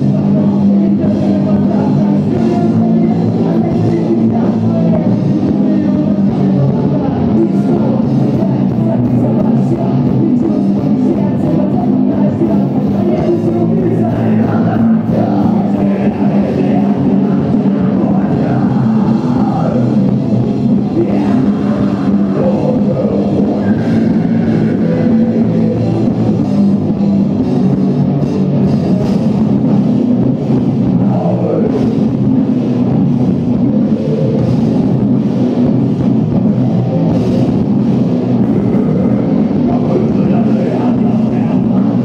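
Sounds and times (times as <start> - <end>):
rock band playing live: 0.0 - 42.0.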